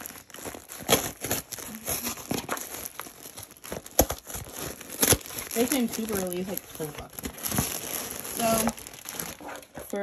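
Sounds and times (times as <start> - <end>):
cardboard tearing: 0.0 - 10.0
scissors cutting cardboard box: 0.0 - 10.0.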